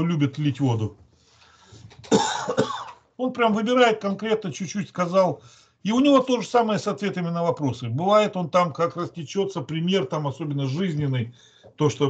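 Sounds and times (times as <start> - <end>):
man coughing: 2.1 - 3.0.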